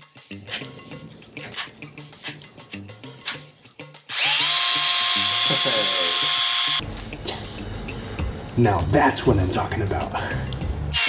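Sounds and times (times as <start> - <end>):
background music with steady beat: 0.0 - 11.0
cordless drill whining: 4.1 - 6.8.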